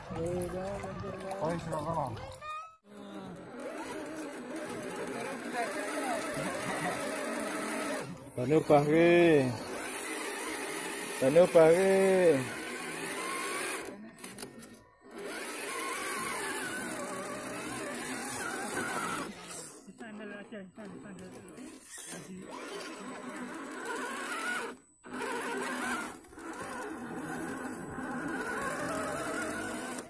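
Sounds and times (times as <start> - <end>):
electric motor and drivetrain whine: 2.9 - 30.0.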